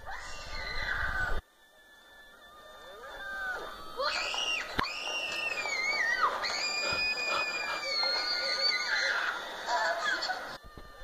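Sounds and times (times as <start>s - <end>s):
girls screaming: 0.0s - 1.4s, 2.8s - 11.0s.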